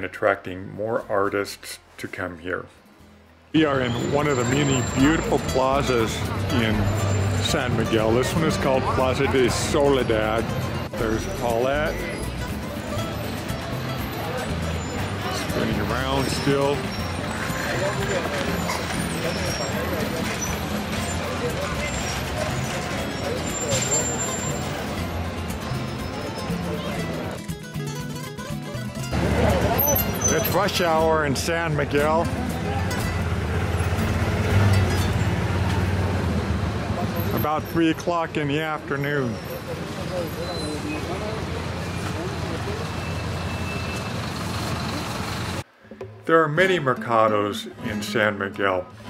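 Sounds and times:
people talking: 3.6 - 13.0, 14.2 - 20.5, 29.2 - 33.1, 37.0 - 43.1, 46.3 - 49.0
bus and traffic engines: 3.7 - 45.9.

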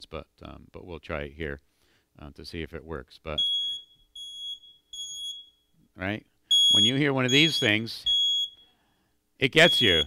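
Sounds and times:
high-pitched alarm beeps: 3.4 - 5.7, 6.5 - 8.8, 9.6 - 10.0.

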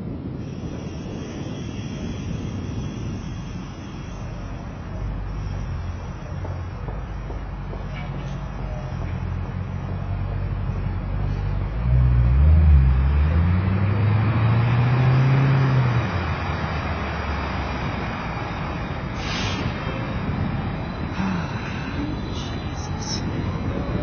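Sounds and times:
city street traffic: 0.0 - 24.0
vehicle engine passing: 4.1 - 24.0
short hiss: 19.2 - 19.9.

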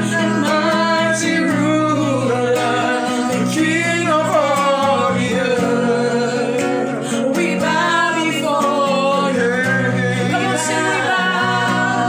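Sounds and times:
acoustic guitar chords: 0.0 - 12.0
woman singing: 0.0 - 12.0.

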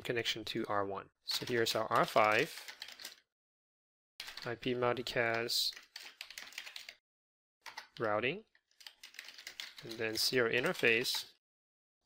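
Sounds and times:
typing on computer keyboard: 1.3 - 3.2, 4.2 - 4.5, 5.2 - 7.0, 7.6 - 8.1, 8.8 - 11.2.

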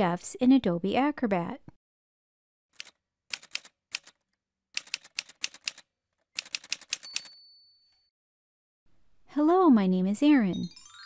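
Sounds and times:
typewriter keys clacking: 2.8 - 4.2, 4.8 - 7.4
typewriter bell ding: 6.8 - 8.1.

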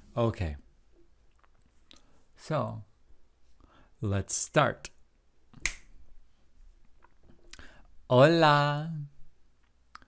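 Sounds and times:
sharp click: 5.6 - 5.9.

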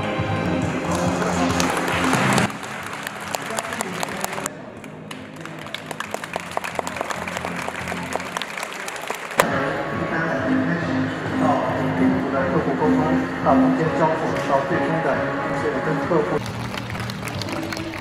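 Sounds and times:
music: 0.0 - 18.0
crowd clapping: 0.5 - 9.5, 16.4 - 18.0.

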